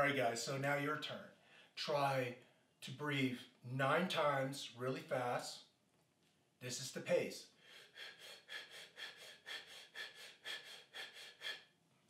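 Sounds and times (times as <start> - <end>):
person breathing rapidly: 7.5 - 11.8.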